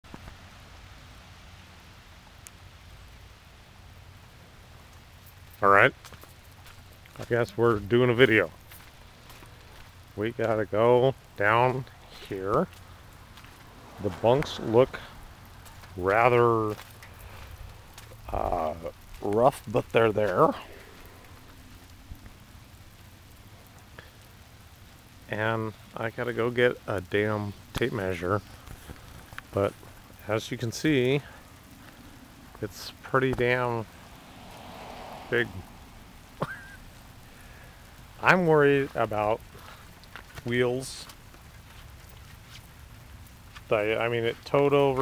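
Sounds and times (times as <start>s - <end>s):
light rain hiss: 0.0s - 45.0s
low rumble: 11.9s - 19.2s, 33.4s - 38.2s.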